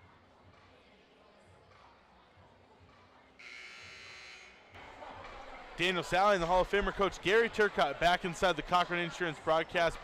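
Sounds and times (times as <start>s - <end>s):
scoreboard horn buzz: 3.4s - 4.6s.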